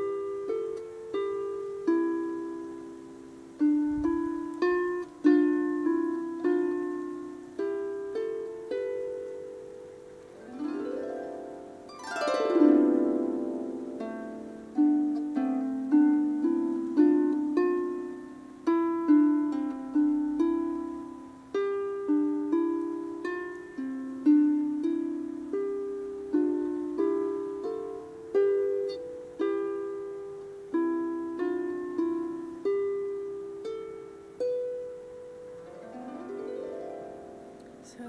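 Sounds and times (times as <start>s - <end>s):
harp plucked notes: 0.0s - 38.0s.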